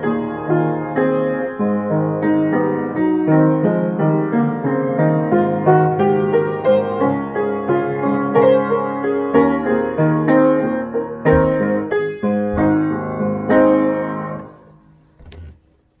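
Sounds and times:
grand piano chords and melody: 0.0 - 15.2.

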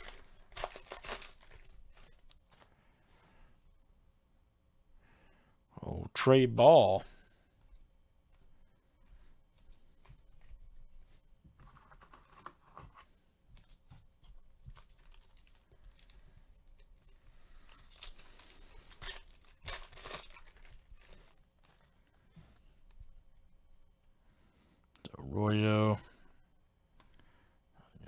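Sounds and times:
foil wrapper tearing and crinkling: 0.0 - 2.7, 14.6 - 22.2.

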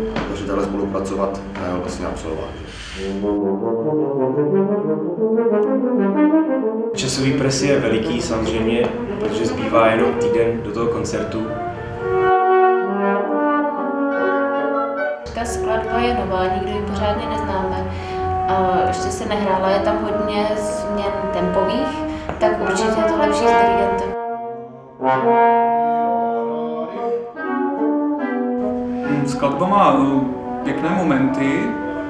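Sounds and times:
trombone and wind quintet playing: 0.0 - 32.0.

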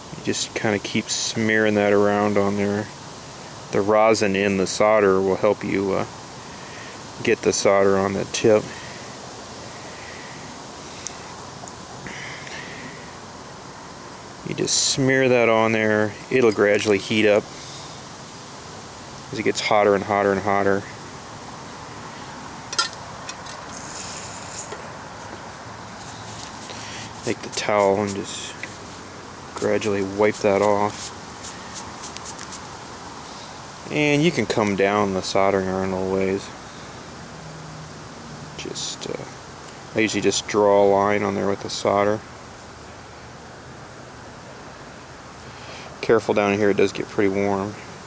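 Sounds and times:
steady background hiss: 0.0 - 48.0.

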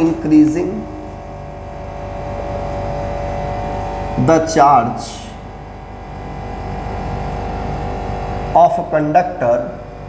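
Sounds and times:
mechanical hum with low buzz: 0.0 - 10.0.

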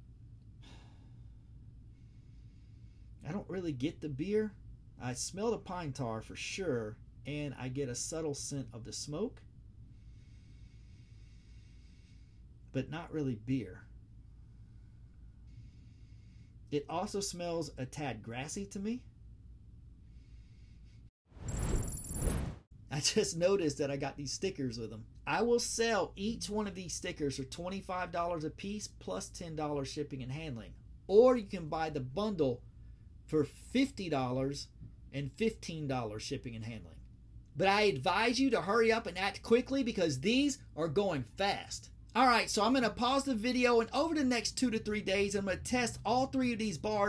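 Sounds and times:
faint low hum: 0.0 - 47.0
whoosh transition effect: 21.4 - 22.6.

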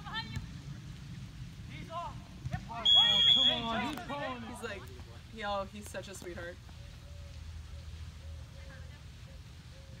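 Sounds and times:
people talking: 1.7 - 6.6
referee's whistle blast: 2.8 - 3.9.

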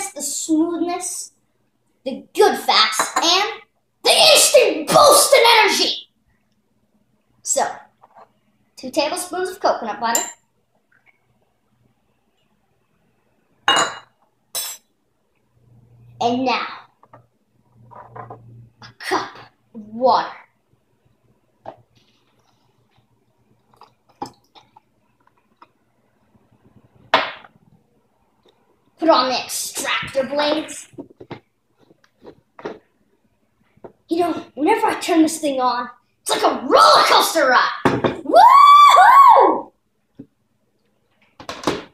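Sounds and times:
metal spoon clinking glass dish: 10.2 - 10.4.

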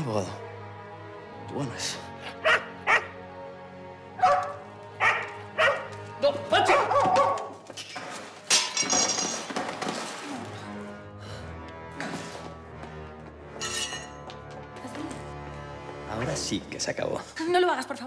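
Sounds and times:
film music: 0.0 - 18.0
dog barking: 2.4 - 3.2, 4.2 - 5.9, 6.6 - 7.6.

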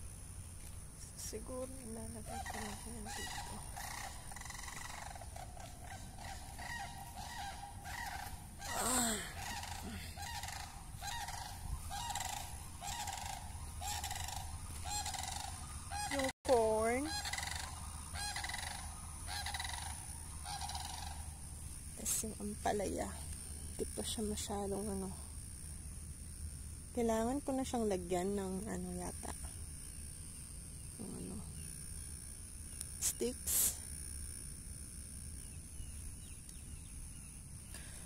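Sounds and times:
large birds honking: 2.2 - 16.3, 17.0 - 21.4.

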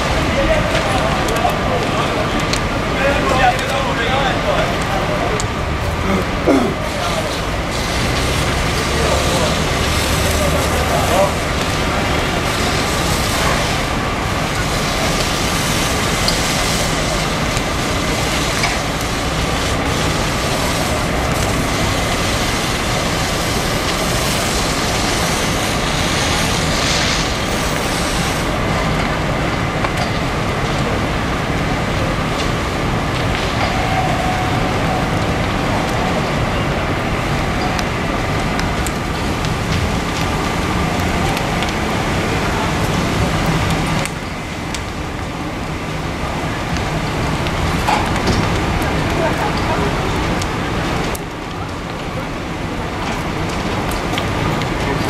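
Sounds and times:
murmur of voices: 0.0 - 29.4, 30.4 - 55.0
fire engine drone: 0.0 - 55.0.

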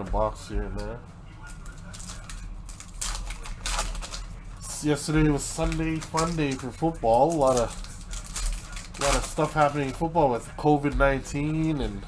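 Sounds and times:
foil wrapper crinkling: 1.4 - 10.4.

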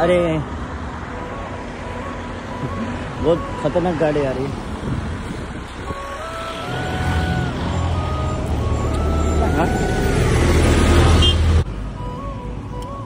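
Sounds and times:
road vehicle passing: 0.0 - 13.0.

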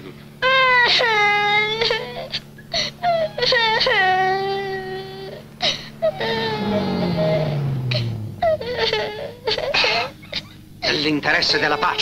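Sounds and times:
boy crying in wails: 0.4 - 11.0
car engine humming: 1.3 - 12.0.

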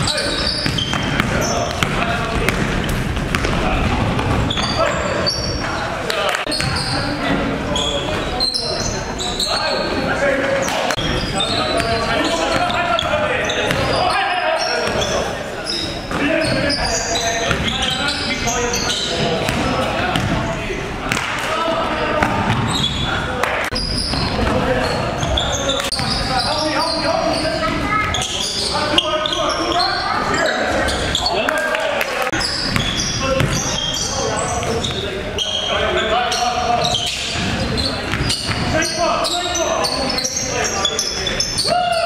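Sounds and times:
basketball bouncing on hardwood floor: 0.6 - 4.4.

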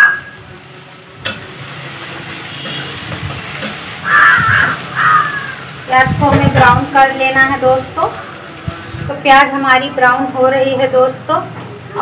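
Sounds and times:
onions sizzling in oil: 0.0 - 10.3
metal spatula stirring: 2.5 - 4.2
loud call: 4.0 - 5.6.

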